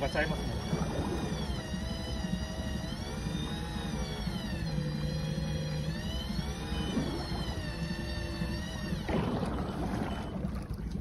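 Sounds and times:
fishing reel motor whining: 0.0 - 11.0
low rumble: 0.4 - 11.0.

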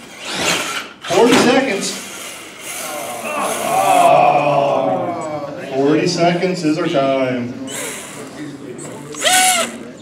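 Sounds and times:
person whooping: 3.0 - 5.3.

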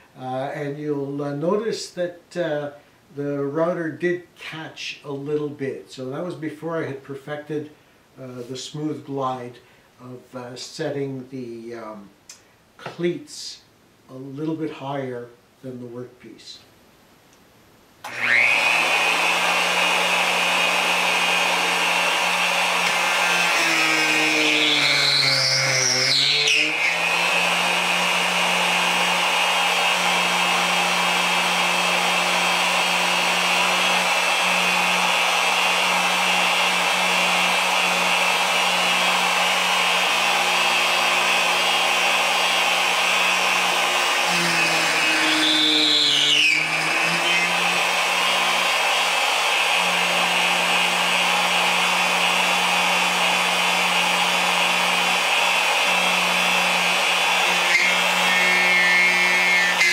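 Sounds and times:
router routing wood: 18.0 - 59.9.

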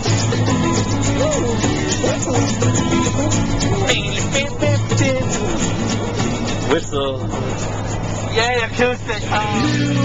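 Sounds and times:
music in car: 0.0 - 10.0
road and engine drone: 0.0 - 10.0.

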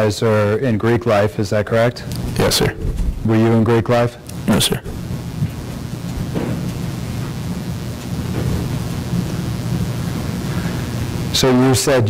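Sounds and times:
microphone hiss: 0.0 - 12.0.

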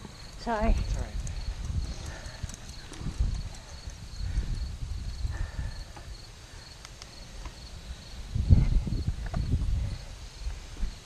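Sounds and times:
faint insect trill: 0.0 - 11.0
wind buffeting microphone: 0.0 - 11.0.

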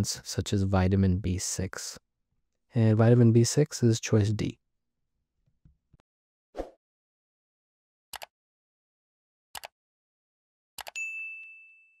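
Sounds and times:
bright bell-like ding: 11.0 - 12.0.

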